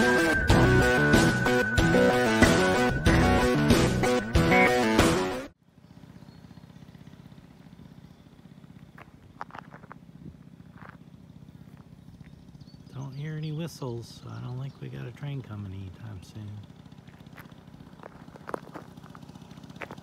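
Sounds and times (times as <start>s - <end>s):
guitar music: 0.0s - 5.5s
scooter engine idling: 5.5s - 20.0s.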